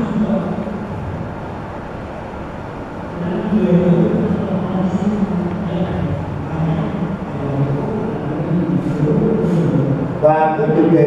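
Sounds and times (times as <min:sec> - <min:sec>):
low mechanical rumble: 0:00.0 - 0:11.0.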